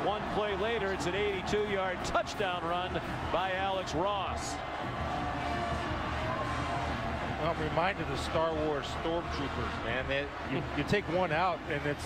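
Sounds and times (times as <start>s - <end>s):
people clapping: 0.0s - 9.7s
stadium crowd cheering: 0.0s - 12.0s.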